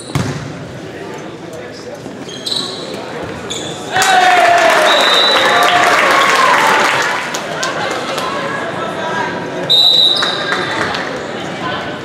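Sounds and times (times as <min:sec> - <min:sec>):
murmur of voices: 0:00.0 - 0:12.0
volleyball being hit: 0:00.1 - 0:00.5
sneaker squeaks on hardwood: 0:02.2 - 0:03.8.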